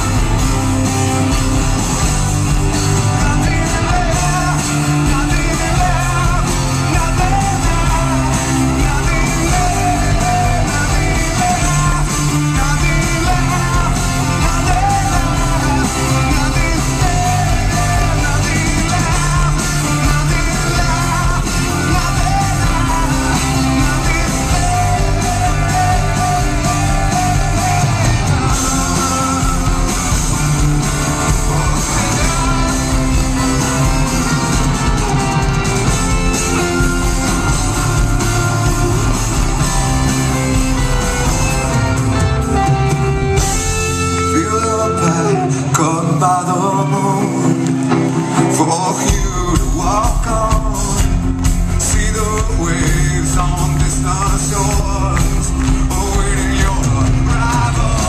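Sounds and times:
live rock band playing: 0:00.0 - 0:58.0
person singing: 0:00.0 - 0:58.0.

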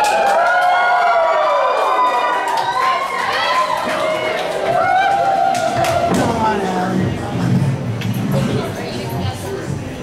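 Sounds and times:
clapping: 0:00.0 - 0:00.9
audience whooping and cheering: 0:00.0 - 0:06.4.

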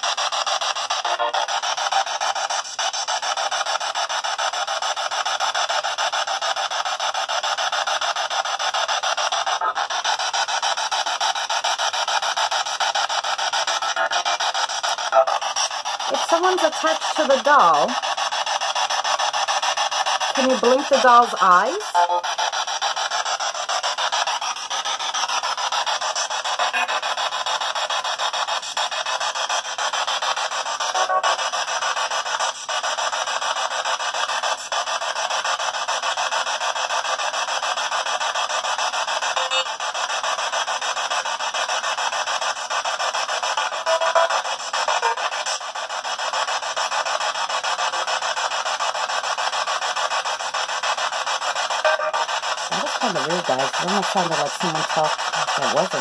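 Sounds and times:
harsh static hiss: 0:00.0 - 0:56.0
chopped radio fragments: 0:13.7 - 0:18.0, 0:20.4 - 0:24.4, 0:43.6 - 0:45.7, 0:51.6 - 0:56.0.

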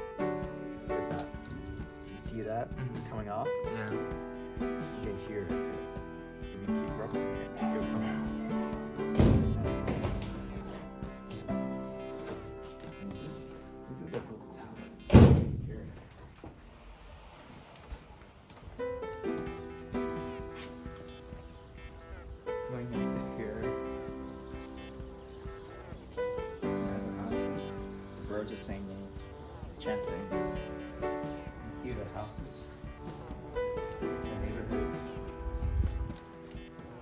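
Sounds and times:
thump: 0:15.1 - 0:15.7.

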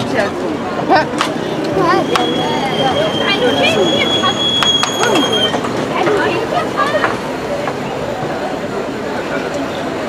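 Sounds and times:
street voices and hubbub: 0:00.0 - 0:10.0
steady high tone: 0:01.8 - 0:05.6.

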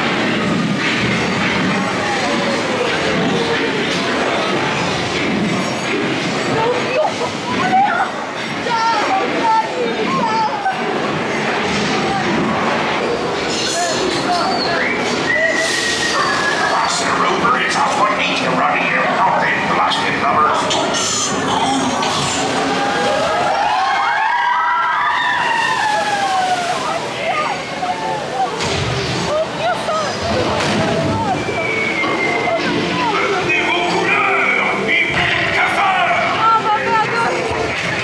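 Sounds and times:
people crying out: 0:20.8 - 0:37.5
background music: 0:30.7 - 0:38.0.

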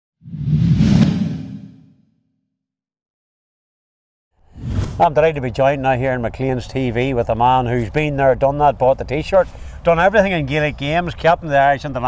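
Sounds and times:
whoosh with low rumble: 0:00.2 - 0:02.0.

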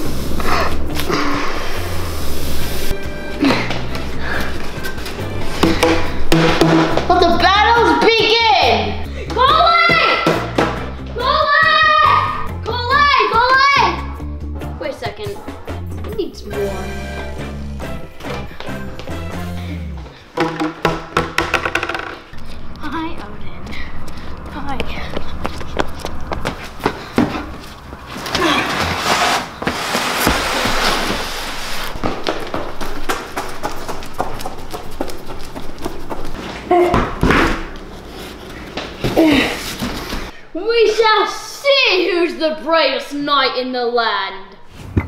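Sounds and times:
background music: 0:00.0 - 0:23.6.

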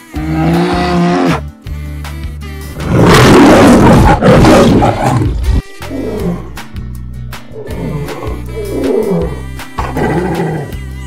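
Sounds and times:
background music: 0:00.0 - 0:11.0
lion roar: 0:02.8 - 0:06.6, 0:07.5 - 0:10.8.

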